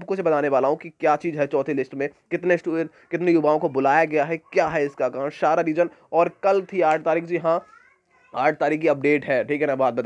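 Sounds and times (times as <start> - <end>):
man talking: 0.0 - 7.7, 8.3 - 10.0.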